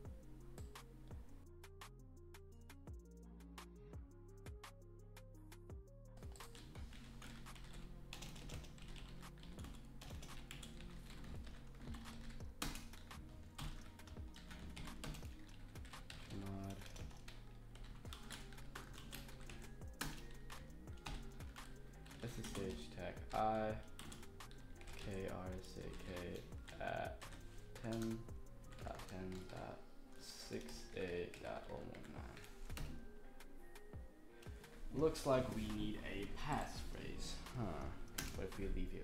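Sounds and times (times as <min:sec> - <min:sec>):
quiet background music: 0:00.0 - 0:39.0
computer keyboard typing: 0:06.2 - 0:29.7, 0:30.4 - 0:33.0, 0:35.7 - 0:38.8.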